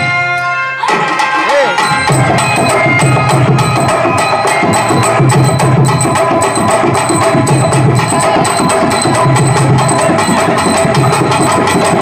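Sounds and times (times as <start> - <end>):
drums beating fast rhythm: 0.8 - 12.0
steady held tones: 1.5 - 12.0.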